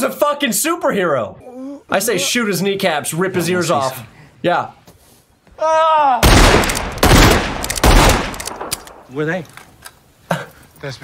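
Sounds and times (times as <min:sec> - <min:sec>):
man crying out: 0:05.6 - 0:06.3
revolver gunshots with echo: 0:06.2 - 0:09.1.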